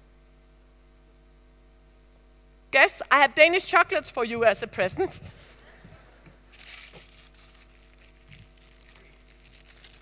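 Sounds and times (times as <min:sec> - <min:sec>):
crinkly bag crackling: 0:06.5 - 0:10.0.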